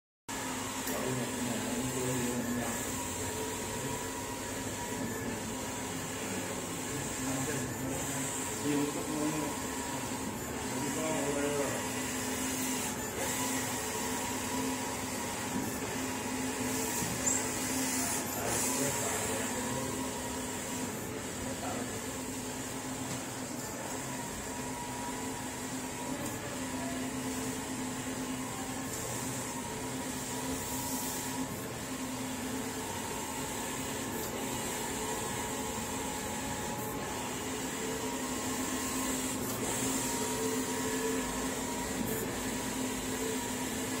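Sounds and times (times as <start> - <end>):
printer fans and motors humming: 0.3 - 44.0.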